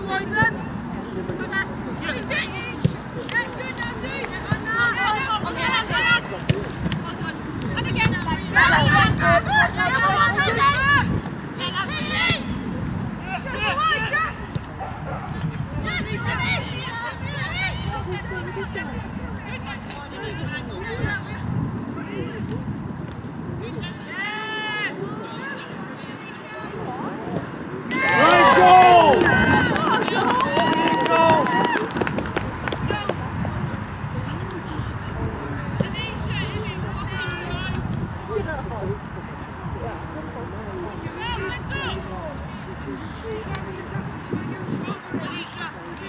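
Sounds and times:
people cheering and shouting: 8.4 - 12.5, 13.2 - 14.5, 27.9 - 33.1
women shouting: 13.2 - 14.5.

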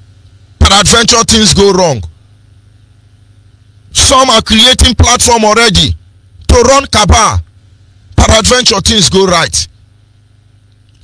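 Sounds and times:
faint low hum: 0.0 - 11.0
man speaking: 0.6 - 2.1, 3.9 - 7.4, 8.2 - 9.7.

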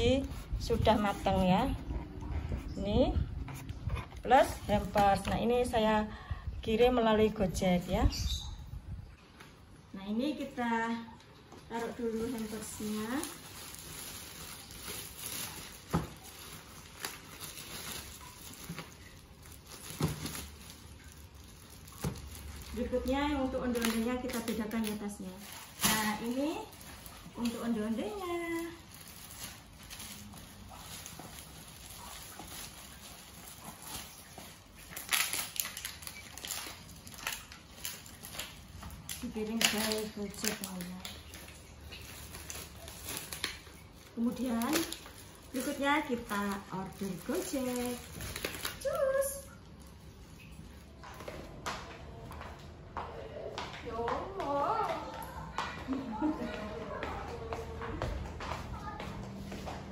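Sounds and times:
plastic bag rustling and crinkling: 0.0 - 8.1, 9.0 - 51.6.

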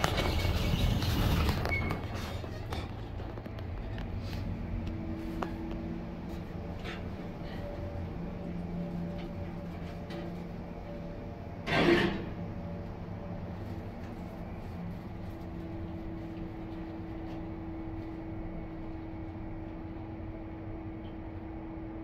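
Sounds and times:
elevator drive hum: 0.0 - 22.0
faint steady tones: 3.1 - 11.7.

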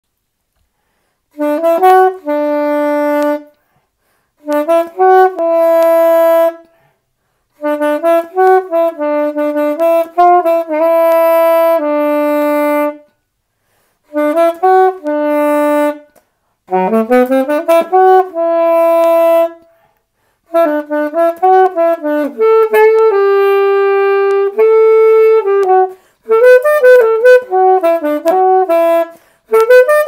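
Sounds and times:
solo saxophone melody: 0.9 - 30.0.

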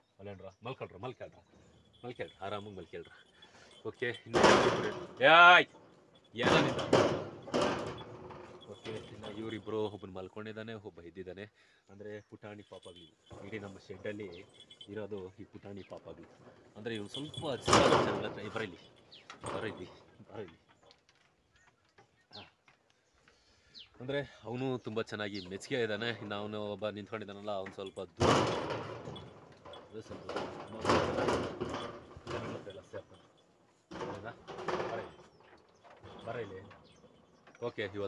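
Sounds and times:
rough rattling clatter: 1.4 - 10.0, 12.6 - 23.0, 24.6 - 38.0.

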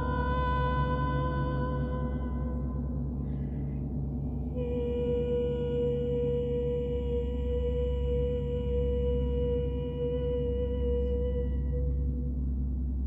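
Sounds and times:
low gong hum: 0.0 - 13.0.

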